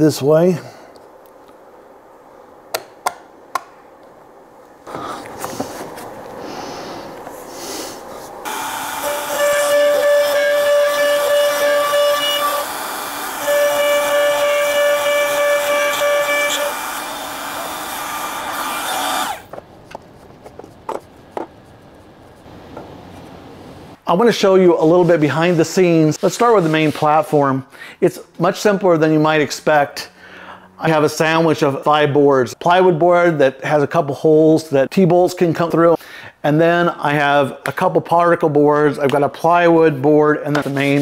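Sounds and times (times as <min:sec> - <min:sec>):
router whining: 0:08.4 - 0:19.6.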